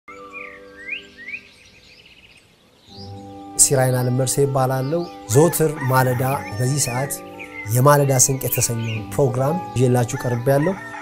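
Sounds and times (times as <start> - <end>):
birds chirping: 0.1 - 11.0
soft held music chord: 2.9 - 10.5.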